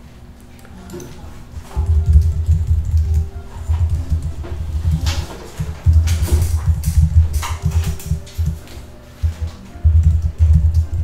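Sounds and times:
typing on computer keyboard: 1.8s - 11.0s.

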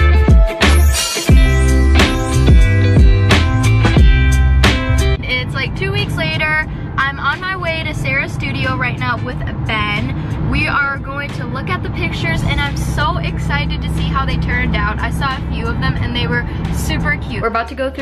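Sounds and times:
car cabin low rumble: 2.2s - 18.0s
woman talking: 5.2s - 18.0s.

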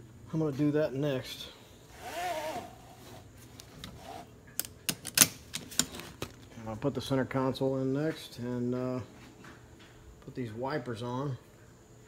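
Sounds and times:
seat belt webbing rubbing: 1.9s - 4.3s.

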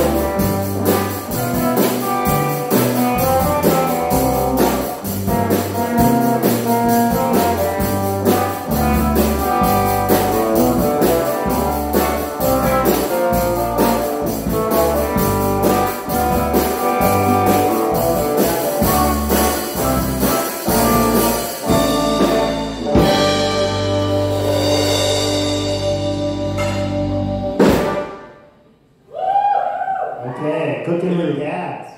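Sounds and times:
drum beat with cymbals: 0.0s - 28.2s
electric guitar lines: 0.0s - 28.2s
rock band final chord: 0.0s - 28.3s
bass line: 0.0s - 28.4s
cymbal crash: 26.5s - 28.4s
high held whoop: 29.1s - 30.4s.

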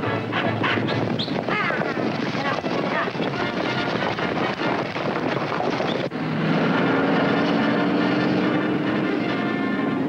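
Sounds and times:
car engine approaching: 5.2s - 10.0s.

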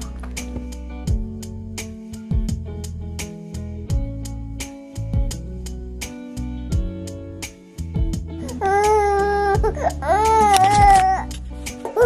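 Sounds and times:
baby crying: 8.4s - 12.0s.

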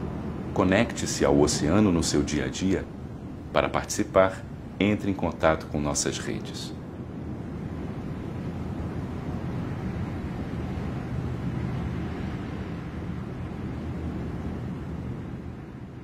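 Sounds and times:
open sea rumbling: 0.0s - 16.0s
wind: 0.0s - 16.0s.

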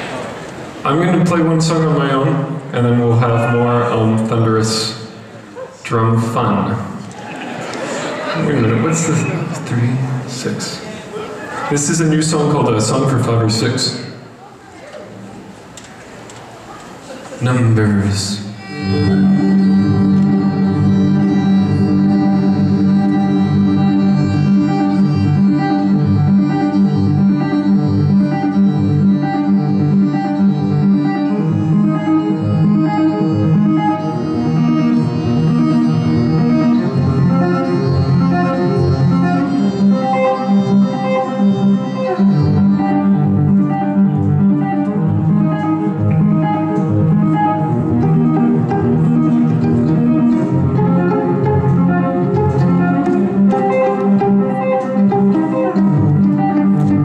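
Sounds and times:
layered looped violin: 18.6s - 57.0s.

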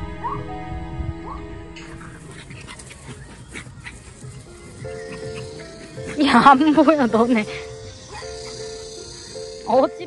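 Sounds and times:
soft background music: 0.0s - 10.0s
small dogs yipping and barking: 1.3s - 10.0s.

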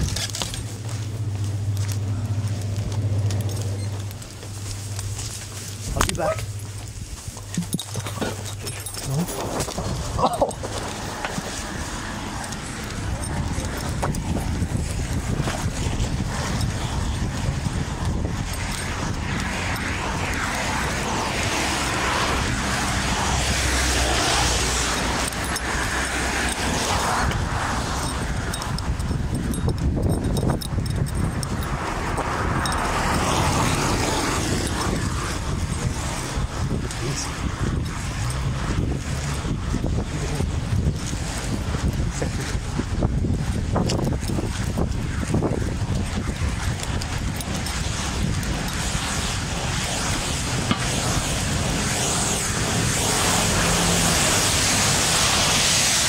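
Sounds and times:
road traffic rush: 0.0s - 56.0s
vehicles passing rumble: 0.0s - 56.0s.

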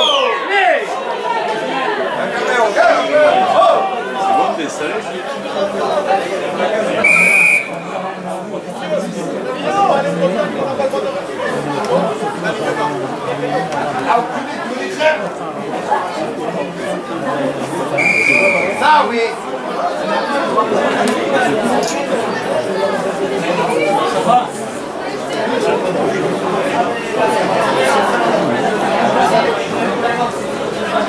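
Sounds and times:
babble of spectators talking: 0.0s - 31.0s
referee's whistle blast: 7.0s - 7.9s, 18.0s - 18.9s.

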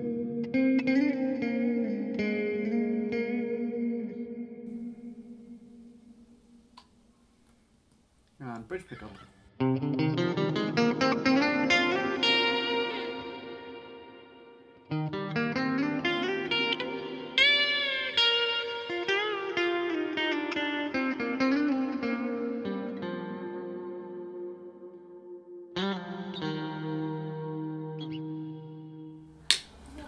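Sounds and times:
clean electric guitar phrases: 0.0s - 7.1s, 9.6s - 30.0s.

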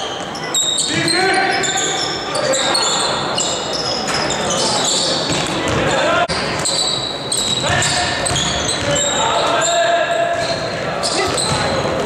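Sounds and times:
sneakers squeaking: 0.0s - 12.0s.

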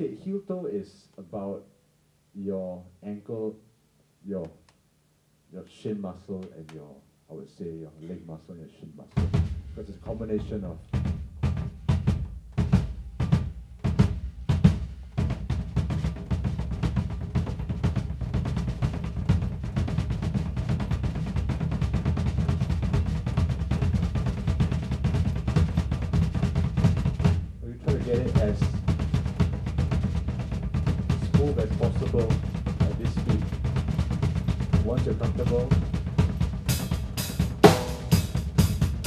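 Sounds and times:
bass drum kicks: 9.1s - 39.0s.

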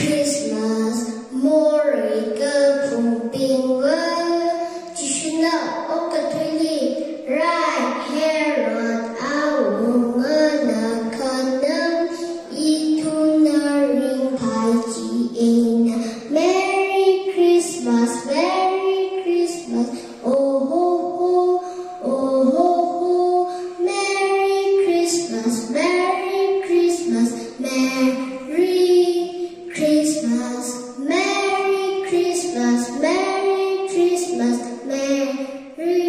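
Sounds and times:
girl singing into a microphone: 0.0s - 36.0s
short breaths: 12.1s - 12.5s, 19.9s - 20.2s, 21.6s - 22.0s.

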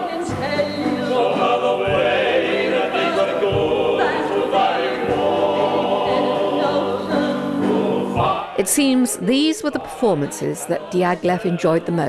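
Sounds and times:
singers singing operatic style: 0.0s - 12.0s.

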